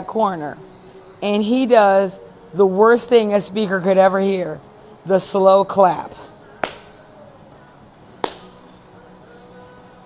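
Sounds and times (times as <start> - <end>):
slow handclaps: 6.6 - 6.9, 8.2 - 8.5.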